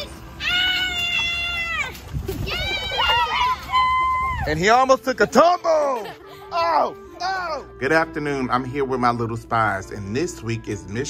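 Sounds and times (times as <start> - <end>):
high-pitched human cries: 0.4 - 4.5, 5.7 - 7.8.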